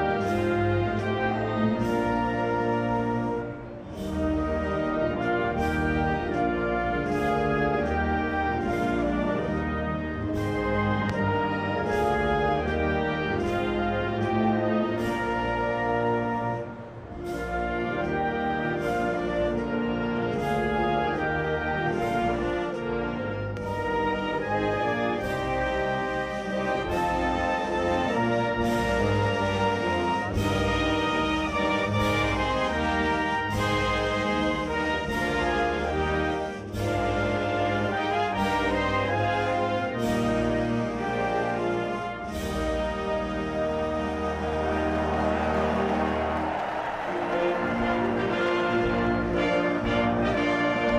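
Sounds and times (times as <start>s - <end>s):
orchestra playing anthem with brass: 0.0s - 50.9s.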